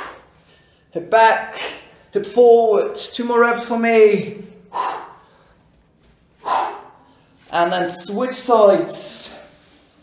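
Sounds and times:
man breathing out hard: 4.6s - 5.7s, 6.4s - 7.4s.

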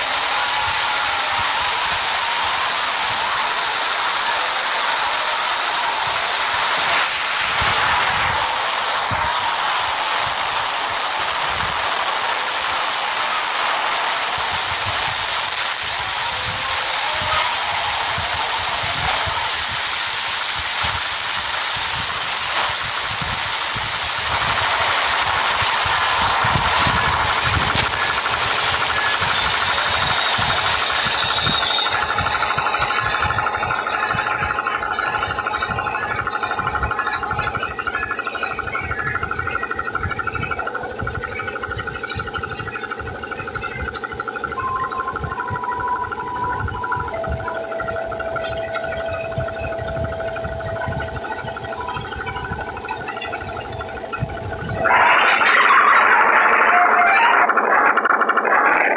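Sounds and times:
loud steady hissing noise: 0.0s - 58.9s
steady tones: 0.0s - 58.9s.

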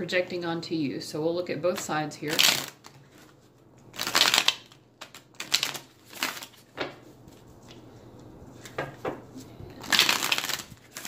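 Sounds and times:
cards being shuffled: 1.8s - 7.9s, 8.5s - 11.0s.

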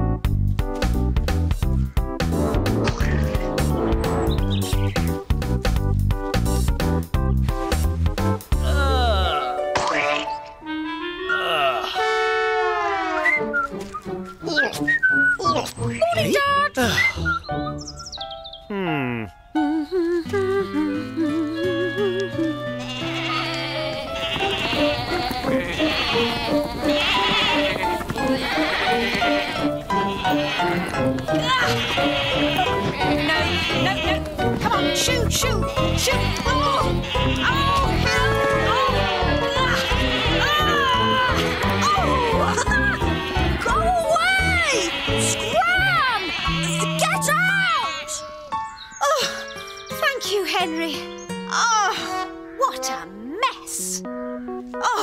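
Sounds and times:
background music score: 0.0s - 55.0s
sheep bleating: 22.7s - 48.5s.

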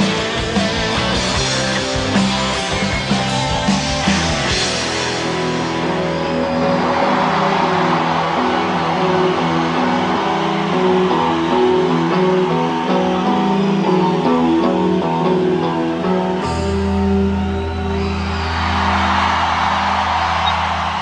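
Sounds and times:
instrumental rock band guitars: 0.0s - 21.0s.

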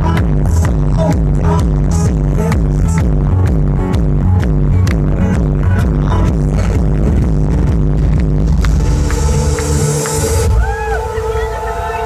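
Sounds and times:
electronic dance music: 0.0s - 12.0s
pulsing bass line: 0.0s - 12.0s.

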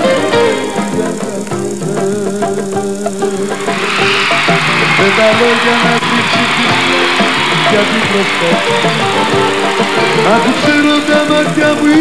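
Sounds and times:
crowd voices: 0.0s - 12.0s
plucked-string and keyboard melody: 0.0s - 12.0s.

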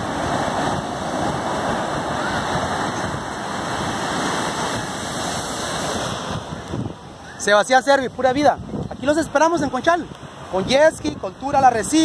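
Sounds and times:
waves breaking on beach: 0.0s - 12.0s.

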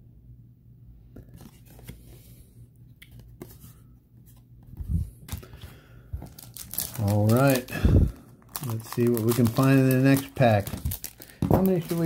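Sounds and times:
trading cards and wrappers rustling: 3.1s - 12.0s.

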